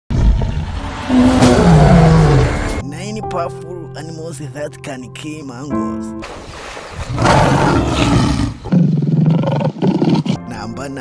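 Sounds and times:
lion roaring: 0.1 - 2.8, 7.1 - 10.4.

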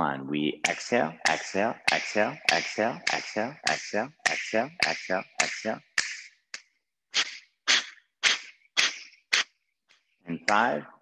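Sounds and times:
forceful nasal exhales: 7.1 - 9.6.

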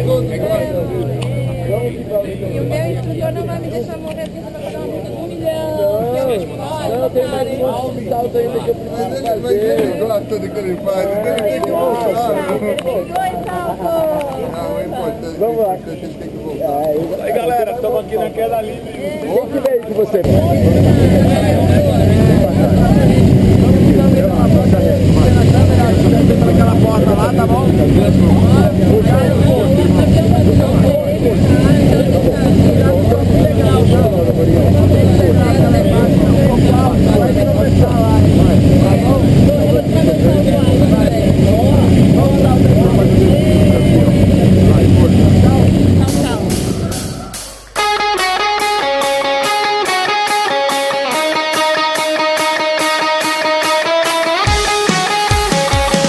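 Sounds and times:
plane engine drone: 0.0 - 9.4, 20.2 - 47.8
muffled voices: 0.0 - 56.0
rock music with guitar: 46.6 - 56.0.

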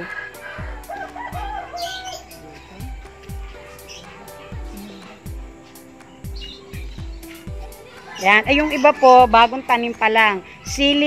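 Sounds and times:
chicken calling: 0.0 - 10.7
background music with held tones: 0.0 - 11.0
low drum beat: 2.3 - 9.9.

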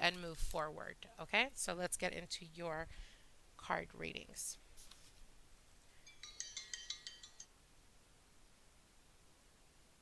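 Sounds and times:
phone ringtone chimes: 6.0 - 7.5.

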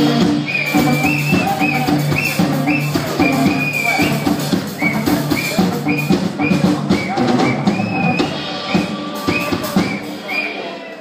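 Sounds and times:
drum kit beat: 0.0 - 11.0
horn section melody: 0.0 - 11.0
live band playing: 0.0 - 11.0.

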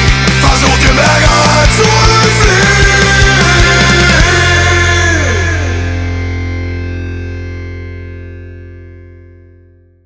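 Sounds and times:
distorted electric guitar chord ringing: 0.0 - 10.0.

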